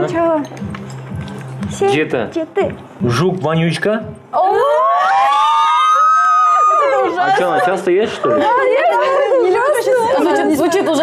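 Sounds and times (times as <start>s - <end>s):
women shrieking together: 4.4s - 7.2s.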